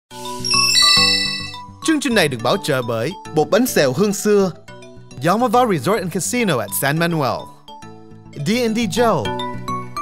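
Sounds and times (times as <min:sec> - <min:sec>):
bell-like chime jingle: 0:00.2 - 0:01.8.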